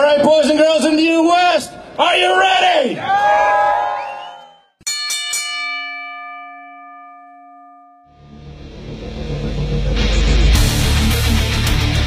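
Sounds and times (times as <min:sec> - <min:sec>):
man shouting: 0:00.0 - 0:03.6
ring bell struck: 0:04.9 - 0:08.6.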